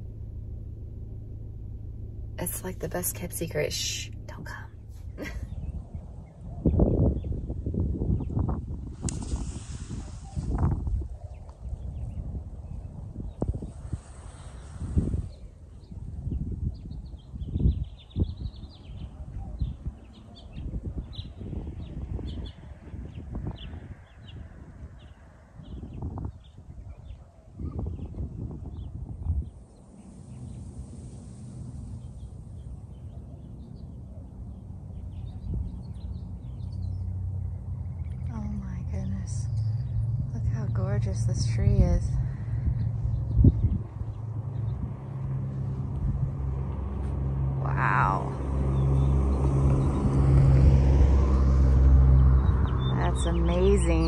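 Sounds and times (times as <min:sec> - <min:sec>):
low steady hum: 0:00.0 - 0:09.2, 0:28.2 - 0:54.0
wind gusting on microphone: 0:02.4 - 0:54.0
small birds chirping: 0:10.2 - 0:45.2, 0:52.2 - 0:54.0.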